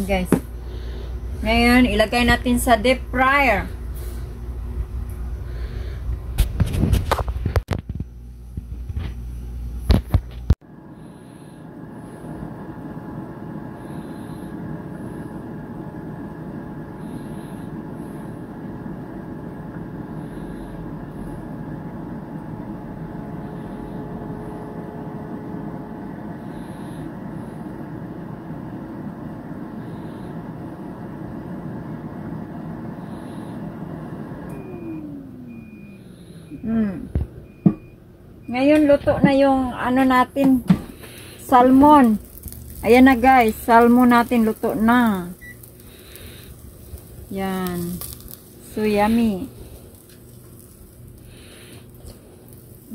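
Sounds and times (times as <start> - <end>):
air fryer fan whir: 0.0 - 52.9
faint hum: 0.0 - 52.9
air fryer beeping: 11.6 - 52.9.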